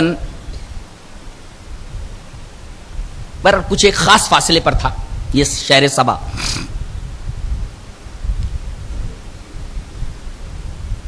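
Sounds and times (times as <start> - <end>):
steady hiss: 0.0 - 11.0
man speaking: 3.5 - 6.6.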